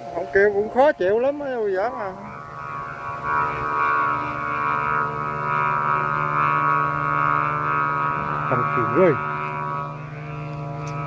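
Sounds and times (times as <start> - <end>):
kite flutes droning: 0.0 - 11.0.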